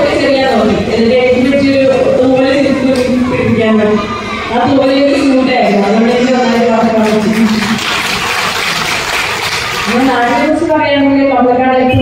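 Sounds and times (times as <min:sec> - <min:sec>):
audience applauding: 0:05.6 - 0:10.6.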